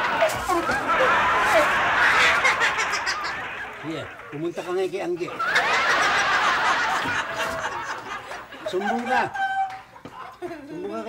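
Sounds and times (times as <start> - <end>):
audience laughter: 0.0 - 9.3.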